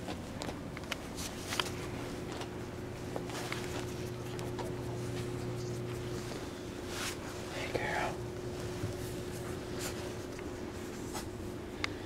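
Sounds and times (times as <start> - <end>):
puppies shifting on blanket: 0.0 - 7.7, 8.5 - 11.6
hand rustling puppy fur: 0.0 - 11.7
steady low hum: 0.0 - 12.0.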